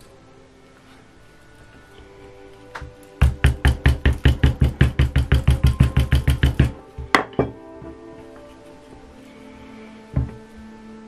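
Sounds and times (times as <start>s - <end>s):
mallet tapping leather: 2.8s - 7.6s.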